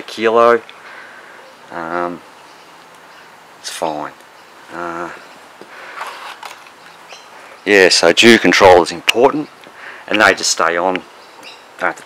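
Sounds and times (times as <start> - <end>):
man's drawn-out hesitation sound: 1.6 - 2.2, 3.6 - 5.3.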